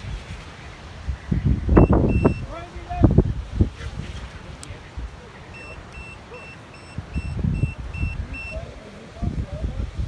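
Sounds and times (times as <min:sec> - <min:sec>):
wind buffeting microphone: 0:00.0 - 0:06.0, 0:06.7 - 0:10.0
short electronic beeps: 0:01.8 - 0:02.5, 0:05.5 - 0:08.6.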